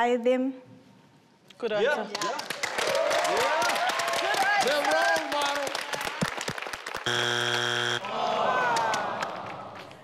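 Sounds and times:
scattered clapping: 0:02.1 - 0:10.0
loud flat buzzer: 0:07.1 - 0:08.0.

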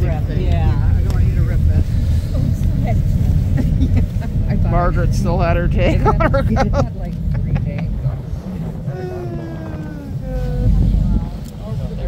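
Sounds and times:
boat engine rumble: 0:00.0 - 0:12.0
wind buffeting microphone: 0:00.0 - 0:12.0.

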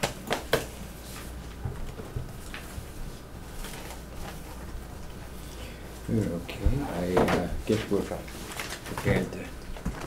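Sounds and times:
indistinct talk in a room: 0:02.6 - 0:10.0.

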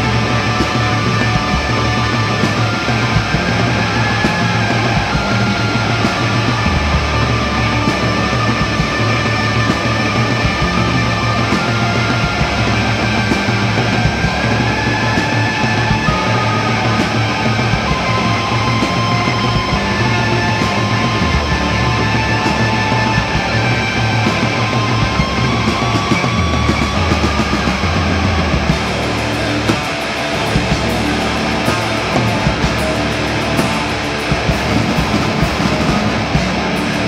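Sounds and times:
bass guitar: 0:00.0 - 0:37.0
drum kit: 0:00.0 - 0:37.0
electric guitar: 0:00.0 - 0:37.0.

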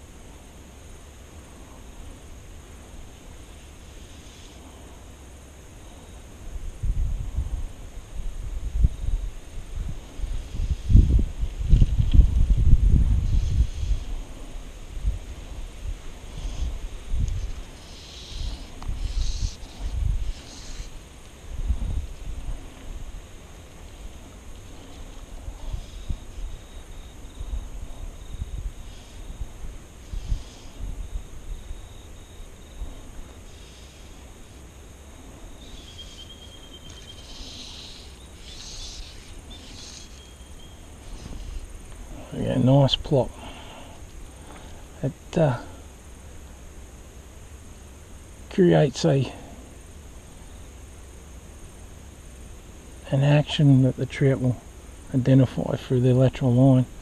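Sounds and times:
faint steady high hiss: 0:00.0 - 0:57.0
wind gusting on microphone: 0:06.4 - 0:34.4.

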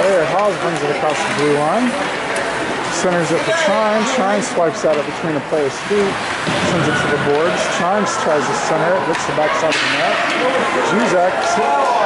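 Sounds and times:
ice rink background noise: 0:00.0 - 0:12.0.

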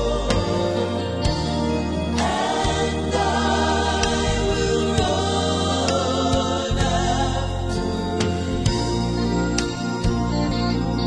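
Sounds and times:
choir singing: 0:00.0 - 0:09.4.

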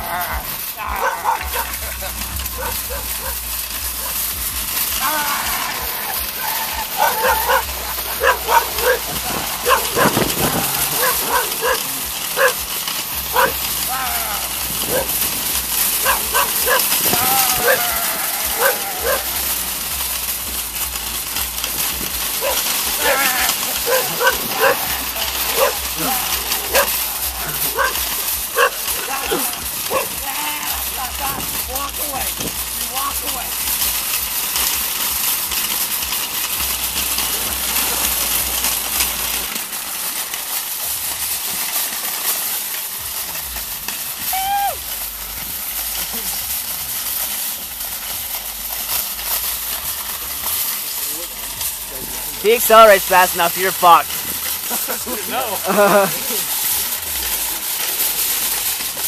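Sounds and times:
cart wheels rolling on gravel: 0:00.0 - 0:59.0
dog barking and yelping: 0:00.8 - 0:01.8, 0:02.5 - 0:03.4, 0:04.0 - 0:04.2, 0:06.0 - 0:12.7, 0:13.3 - 0:13.8, 0:14.8 - 0:15.3, 0:15.9 - 0:19.4, 0:22.3 - 0:30.2.

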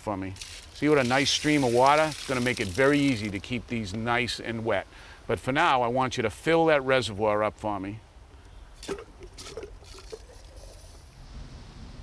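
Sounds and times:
water trickling from hose: 0:00.2 - 0:03.6, 0:08.8 - 0:11.2.

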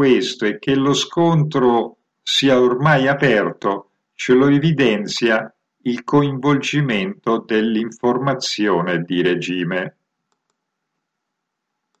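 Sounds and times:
faint clicks: 0:10.2 - 0:10.7.

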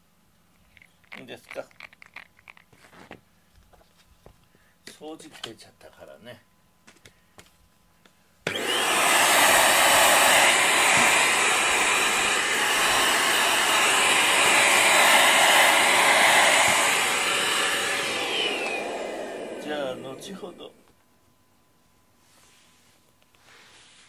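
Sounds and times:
handheld vacuum cleaner running: 0:08.5 - 0:20.8
vacuum motor spinning down: 0:08.5 - 0:20.9.

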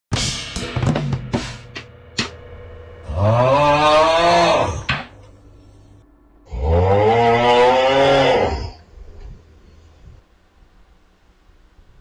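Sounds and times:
rapid drum fill: 0:00.1 - 0:03.7
cymbal crash: 0:00.1 - 0:06.1.

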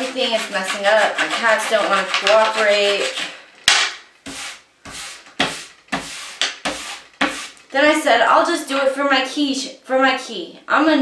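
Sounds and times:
hands scraping dough on tabletop: 0:00.0 - 0:07.7.

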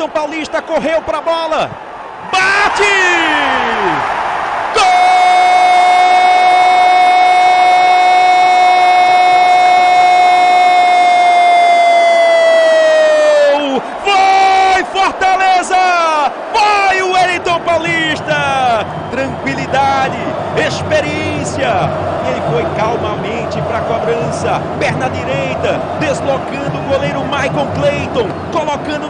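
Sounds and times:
excited shouted commentary: 0:00.0 - 0:29.0.

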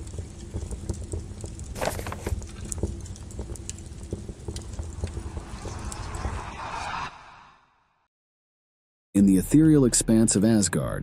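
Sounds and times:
low rumble: 0:00.3 - 0:08.0.

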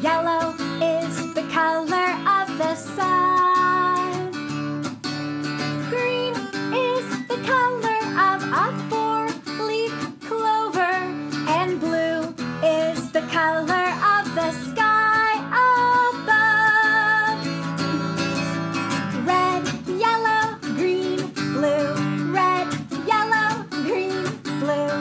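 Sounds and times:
woman singing: 0:00.0 - 0:04.5, 0:05.6 - 0:18.2, 0:18.9 - 0:25.0
acoustic guitar strumming: 0:00.0 - 0:25.0.

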